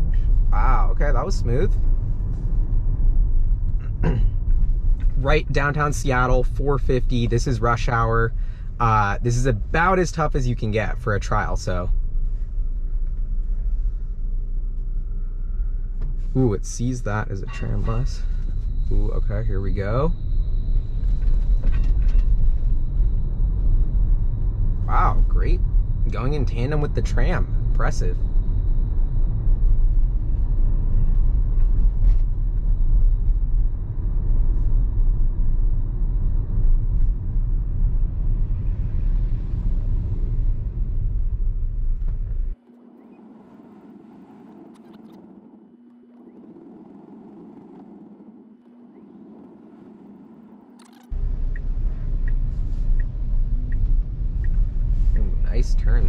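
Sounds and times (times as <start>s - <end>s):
faint steady hum: 0.0s - 56.0s
tyre and road rumble: 0.0s - 56.0s
turn signal ticking: 50.8s - 55.7s.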